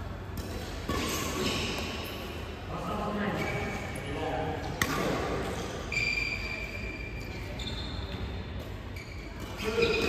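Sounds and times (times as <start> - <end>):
shoes squeaking on court: 0.4 - 2.3, 3.2 - 4.1, 5.4 - 10.0.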